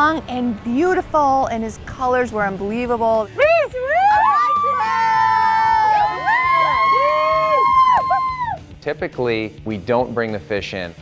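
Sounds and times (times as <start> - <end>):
women shrieking and squealing: 3.4 - 8.6.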